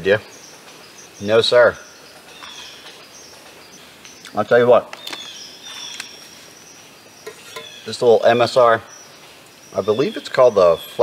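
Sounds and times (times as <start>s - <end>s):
high insect trill: 0.0s - 11.0s.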